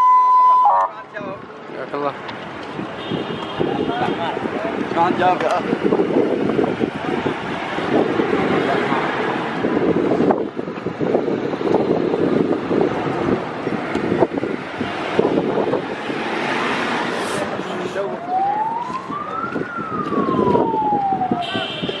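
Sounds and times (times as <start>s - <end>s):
vehicle siren wailing: 0.0s - 1.0s, 17.9s - 22.0s
crowd on foot: 0.0s - 22.0s.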